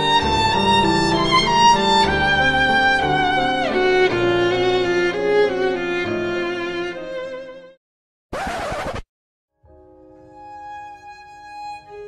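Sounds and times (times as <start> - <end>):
violin-led string music: 0.0 - 7.8, 10.0 - 12.0
harsh scratching noise: 8.3 - 9.1.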